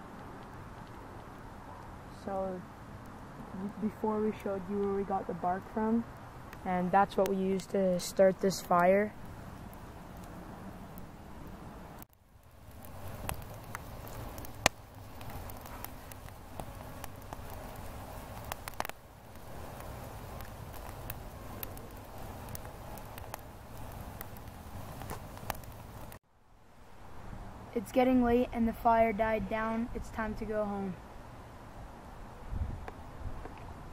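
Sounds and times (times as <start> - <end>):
campfire crackling and popping: 0.0 - 26.2, 27.8 - 31.4.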